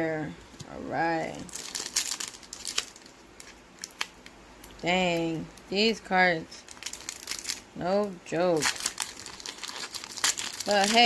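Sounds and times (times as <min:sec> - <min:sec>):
foil wrapper crinkling and tearing: 0:01.2 - 0:05.7, 0:06.6 - 0:11.0.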